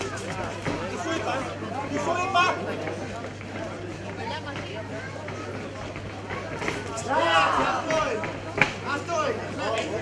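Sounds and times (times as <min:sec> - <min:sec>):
indistinct chatter of spectators: 0:00.0 - 0:10.0.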